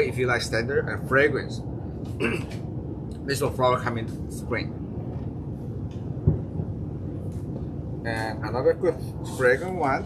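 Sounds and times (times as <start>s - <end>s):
low background rumble: 0.0s - 10.0s
dull low thump: 5.0s - 8.0s.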